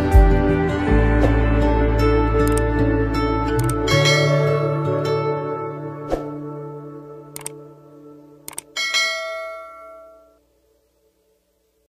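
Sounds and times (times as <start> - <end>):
mouse clicks: 2.4 - 2.6, 3.6 - 3.8, 7.4 - 7.6, 8.5 - 8.7
bright bell chime: 8.8 - 10.4.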